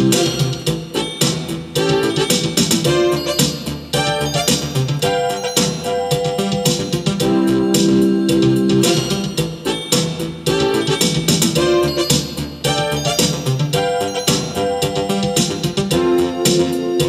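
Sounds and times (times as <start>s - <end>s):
drum beat: 0.0s - 17.0s
held keyboard chords: 0.0s - 17.0s
keyboard melody: 0.0s - 17.0s.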